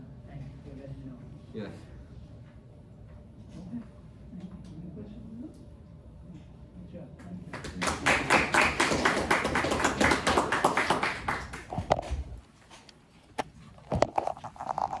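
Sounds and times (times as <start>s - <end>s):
small group clapping: 7.2s - 12.2s.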